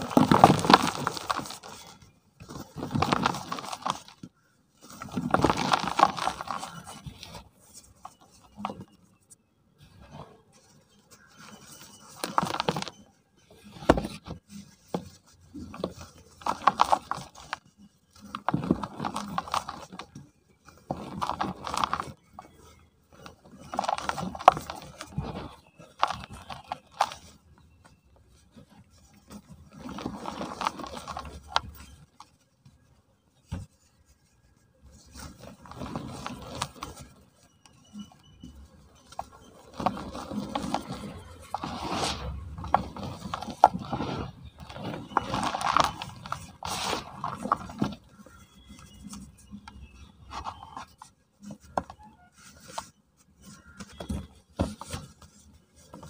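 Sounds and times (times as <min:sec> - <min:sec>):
cement blocks crunching: 0:00.0 - 0:07.4, 0:11.2 - 0:14.4, 0:15.0 - 0:27.4, 0:29.1 - 0:32.1, 0:35.0 - 0:37.3, 0:38.0 - 0:56.0.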